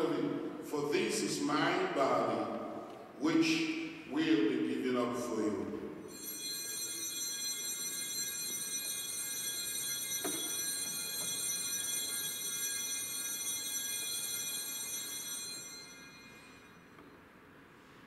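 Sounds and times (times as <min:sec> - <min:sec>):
altar bells ringing: 0:06.0 - 0:17.0.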